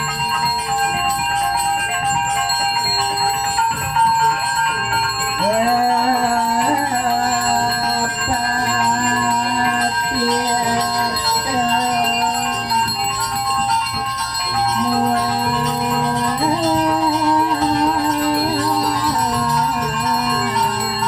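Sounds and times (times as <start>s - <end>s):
hand bell ringing: 0.0s - 21.0s.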